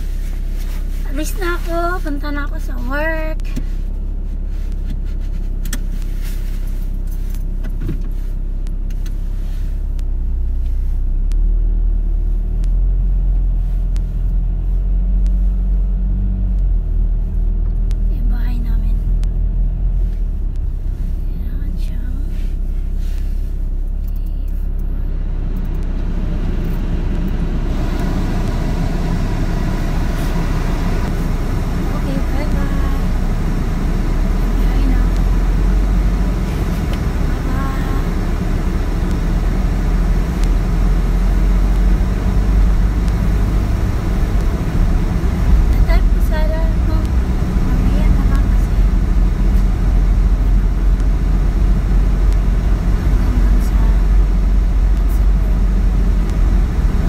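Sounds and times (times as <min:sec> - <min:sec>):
car engine accelerating: 0:00.0 - 0:57.0
tyre and road noise: 0:00.0 - 0:57.0.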